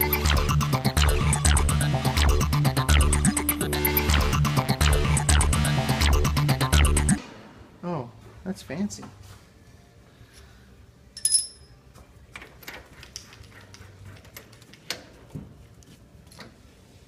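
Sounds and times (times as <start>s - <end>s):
metal tools clicking and knocking: 11.2s - 11.7s
ringing metallic clink: 11.2s - 11.8s.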